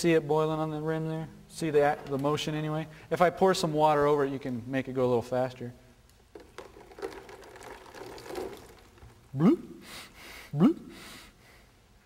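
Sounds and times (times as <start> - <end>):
water pouring and splashing: 6.4 - 9.3.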